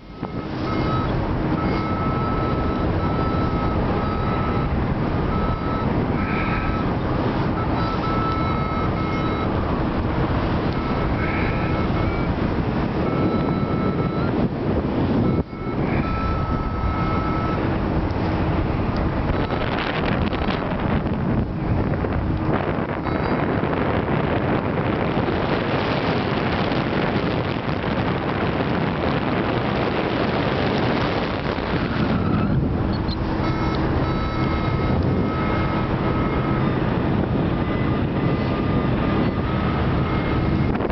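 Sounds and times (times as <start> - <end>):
faint steady tones: 0.0 - 17.7, 26.0 - 40.9
wind rushing on microphone: 0.0 - 40.9.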